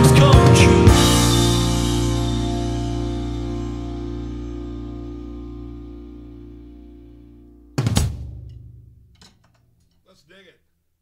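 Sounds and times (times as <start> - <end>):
band hit led by drums: 0.0 - 2.6, 7.8 - 9.1.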